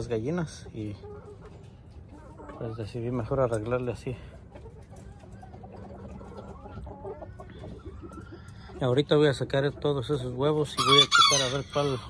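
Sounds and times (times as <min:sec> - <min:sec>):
chickens clucking quietly: 0:00.0 - 0:12.0.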